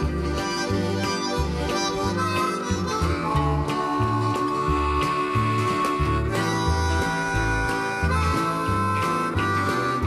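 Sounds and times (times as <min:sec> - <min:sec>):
bouncing bass line: 0:00.0 - 0:10.0
country band: 0:00.0 - 0:10.0
guitar: 0:00.0 - 0:10.0
harmonica solo: 0:00.0 - 0:10.0.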